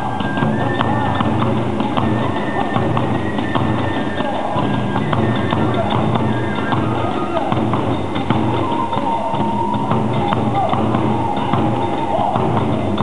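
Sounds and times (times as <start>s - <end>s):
flute playing held line: 0.0s - 13.0s
small cymbals: 0.0s - 13.0s
taiko drum: 0.0s - 13.0s.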